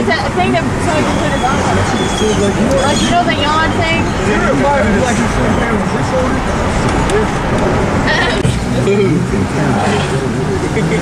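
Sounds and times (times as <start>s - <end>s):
road and engine noise: 0.0s - 11.0s
voices in car: 0.0s - 11.0s
people laughing: 9.8s - 11.0s.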